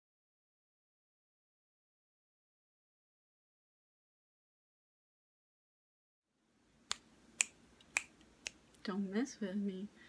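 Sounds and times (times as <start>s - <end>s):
finger snaps: 6.9s - 8.8s.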